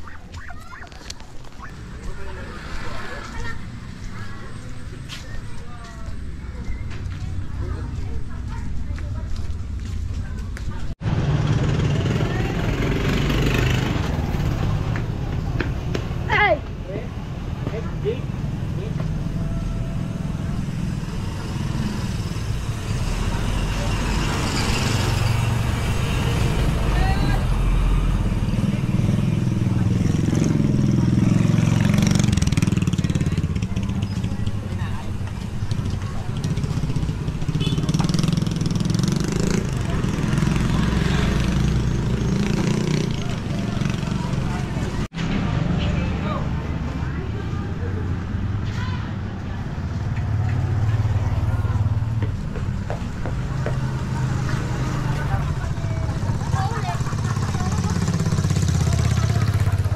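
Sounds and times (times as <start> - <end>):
people's voices: 0.0 - 11.0, 11.6 - 59.9
motorcycles passing: 0.0 - 59.9.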